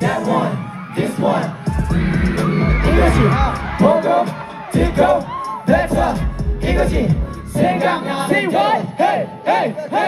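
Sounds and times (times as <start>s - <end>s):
crowd cheering: 0.0s - 6.4s
pop song playing: 0.0s - 10.0s
rhythmic shouted vocals: 0.0s - 10.0s.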